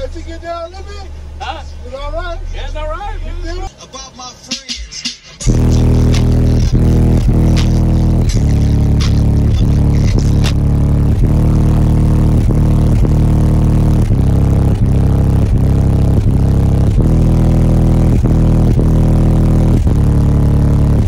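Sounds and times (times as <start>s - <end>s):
loud bass-heavy music: 0.0s - 21.0s.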